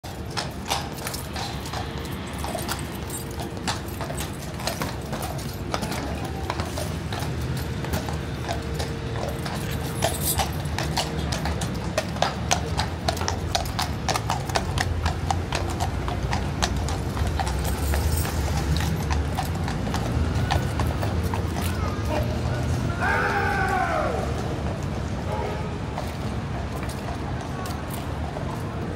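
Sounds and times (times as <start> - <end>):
horse hooves clopping on stone: 0.0 - 22.5, 23.4 - 28.9.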